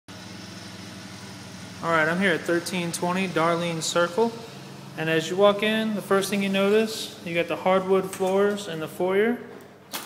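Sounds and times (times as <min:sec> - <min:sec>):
low machine hum: 0:00.1 - 0:09.8
man speaking: 0:01.8 - 0:09.6.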